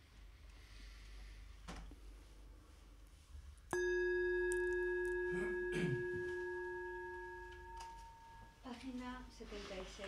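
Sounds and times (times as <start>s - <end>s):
metal singing bowl ringing: 3.7s - 8.7s.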